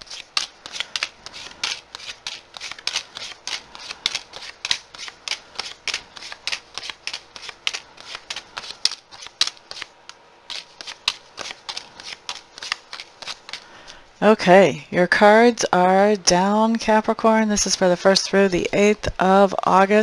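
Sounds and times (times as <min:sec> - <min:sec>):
cards snapping and slapping: 0:00.0 - 0:13.7.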